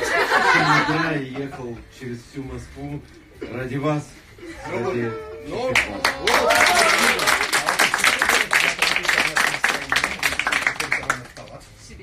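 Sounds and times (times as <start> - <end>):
audience applauding: 5.7 - 11.5.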